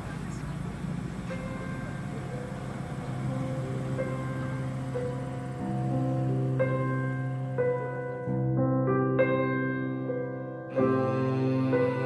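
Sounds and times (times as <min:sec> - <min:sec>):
low outdoor rumble: 0:00.0 - 0:08.5
soft piano music: 0:00.0 - 0:12.0.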